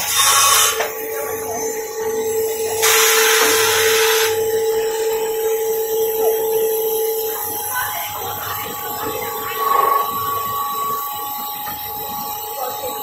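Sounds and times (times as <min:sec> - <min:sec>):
machine whining: 0:00.0 - 0:13.0
loud hiss of air: 0:02.8 - 0:04.4.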